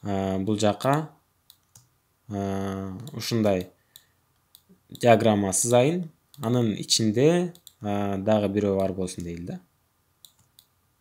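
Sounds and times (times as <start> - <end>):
faint computer clicks: 10.2 - 10.7.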